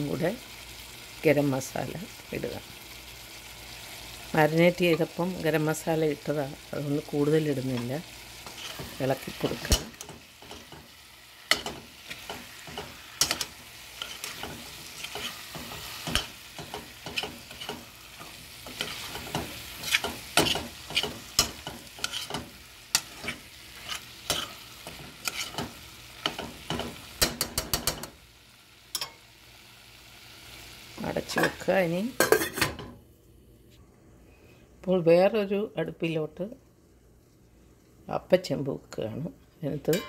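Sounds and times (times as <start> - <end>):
frying sizzle: 0.0 - 32.9.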